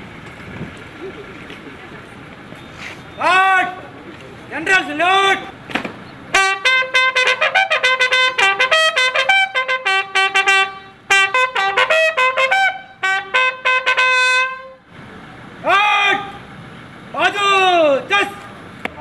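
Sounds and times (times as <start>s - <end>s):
shouted drill command: 3.2s - 3.8s, 4.6s - 5.6s, 15.6s - 16.4s, 17.1s - 18.5s
bugle call: 6.3s - 14.8s.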